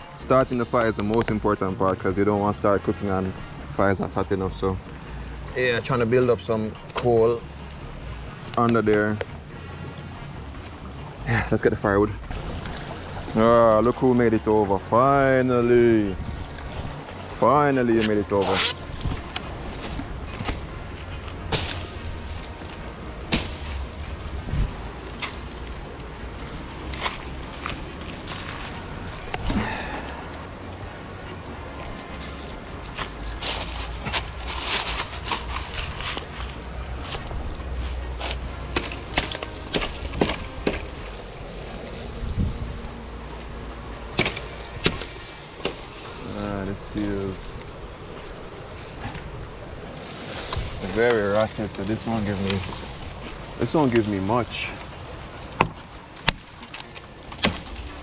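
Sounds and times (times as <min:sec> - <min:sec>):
brush rustling: 0:00.0 - 0:58.0
wind rumble on microphone: 0:15.7 - 0:17.5, 0:18.2 - 0:38.6, 0:40.0 - 0:56.6
machete chopping branches: 0:18.0 - 0:30.4, 0:32.2 - 0:36.6, 0:37.8 - 0:42.2, 0:43.4 - 0:46.4, 0:55.5 - 0:58.0.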